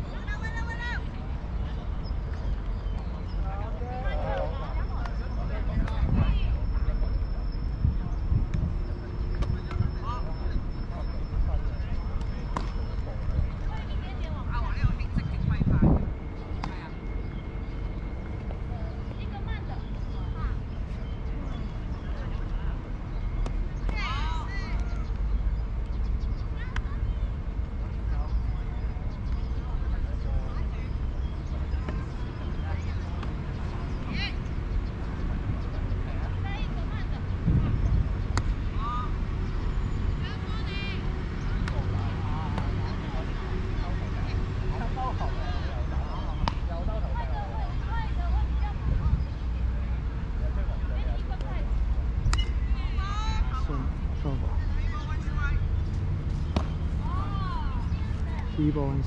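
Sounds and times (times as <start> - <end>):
distant voices calling out: 0.0 - 59.0.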